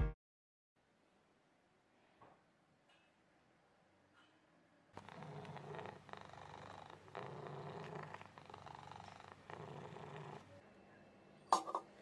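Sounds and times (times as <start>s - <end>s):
cat purring: 5.0s - 10.6s.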